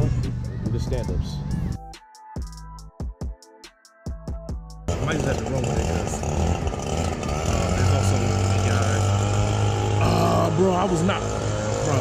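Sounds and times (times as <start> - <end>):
man talking: 0.0 - 1.5, 4.9 - 6.3, 7.6 - 9.2, 10.0 - 12.0
beat-driven music: 0.0 - 5.5
leaf blower engine droning: 4.9 - 12.0.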